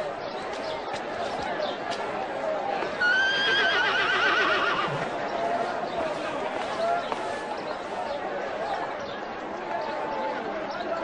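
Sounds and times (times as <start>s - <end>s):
horse whinnying: 3.0s - 5.0s.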